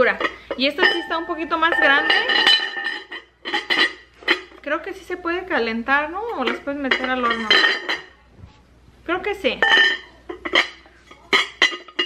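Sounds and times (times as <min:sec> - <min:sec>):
ceramic lid clinking on dish: 0:00.1 - 0:04.5, 0:09.6 - 0:12.0.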